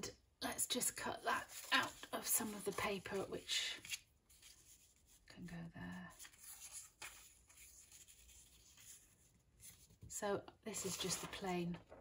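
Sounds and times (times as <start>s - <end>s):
paper rustling and sliding: 10.7s - 12.0s.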